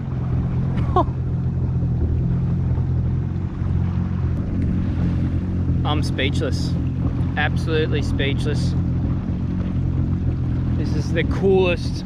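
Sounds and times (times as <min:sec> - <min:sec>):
jet ski engine humming: 0:00.0 - 0:12.0.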